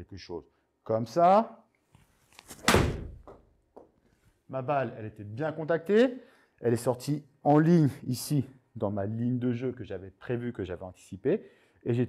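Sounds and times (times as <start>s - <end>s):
ball thudding into screen: 2.5s - 3.4s.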